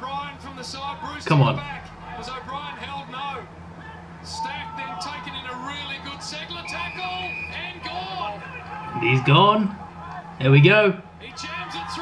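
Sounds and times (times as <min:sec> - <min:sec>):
man commentating: 0:00.0 - 0:03.5, 0:04.3 - 0:09.8, 0:10.4 - 0:12.0
steady low hum: 0:00.0 - 0:12.0.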